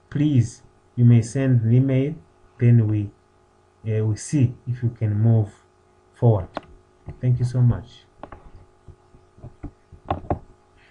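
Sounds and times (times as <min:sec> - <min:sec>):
low electrical hum: 0:00.0 - 0:10.9
faint knocks and clicks: 0:06.5 - 0:07.2, 0:08.2 - 0:10.6.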